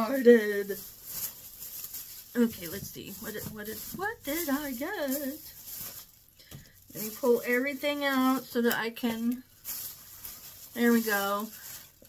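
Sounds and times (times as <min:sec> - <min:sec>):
tissue paper rustling: 0:00.0 - 0:12.0.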